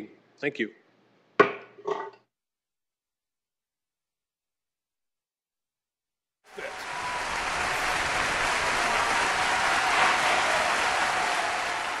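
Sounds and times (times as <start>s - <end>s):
crowd clapping: 6.5s - 12.0s.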